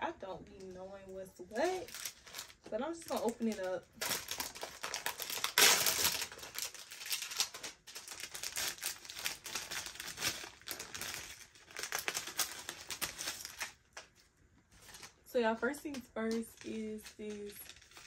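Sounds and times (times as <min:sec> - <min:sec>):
plastic packaging crinkling: 0:00.6 - 0:15.2, 0:15.9 - 0:18.0.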